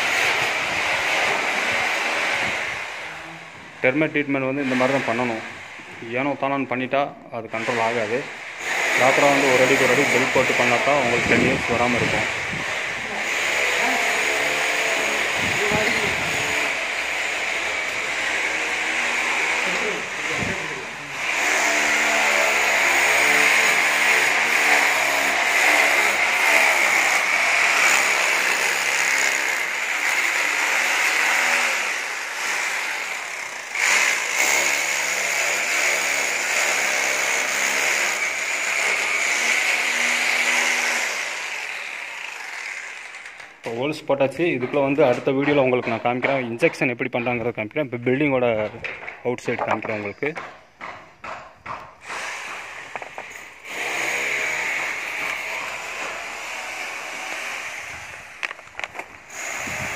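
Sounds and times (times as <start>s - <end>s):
power drill boring into brick: 7.6s - 43.6s, 52.0s - 59.9s.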